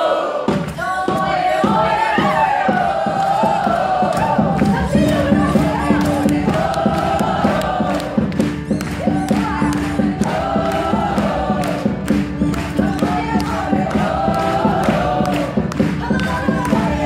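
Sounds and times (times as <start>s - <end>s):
women singing together: 0.0s - 17.0s
percussive beat: 0.3s - 17.0s.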